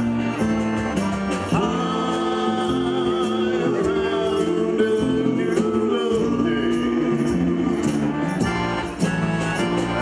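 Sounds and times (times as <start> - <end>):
folk band playing: 0.0 - 10.0
person singing: 1.5 - 8.0.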